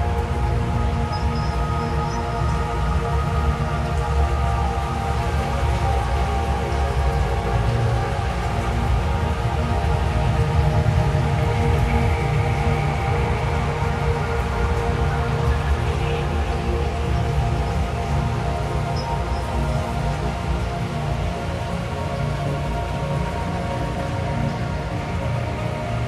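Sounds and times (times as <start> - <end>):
dark ambient drone music: 0.0 - 26.0
rain: 0.0 - 26.0.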